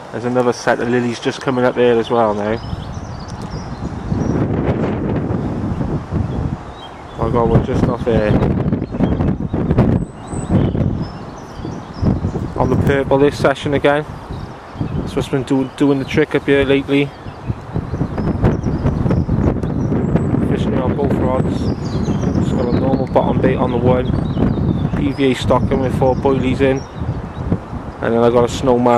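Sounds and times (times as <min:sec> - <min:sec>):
wind buffeting microphone: 0:00.0 - 0:28.9
faint clicks: 0:03.2 - 0:03.6.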